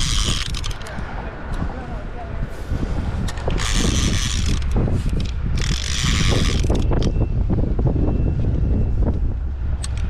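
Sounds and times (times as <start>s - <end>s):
fishing reel ratcheting buzz: 0.0s - 0.9s, 3.4s - 7.1s
low wind rumble: 0.0s - 10.0s.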